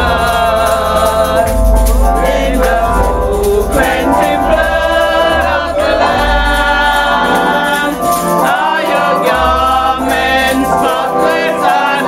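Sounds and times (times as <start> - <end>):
voices singing along: 0.0 - 12.0.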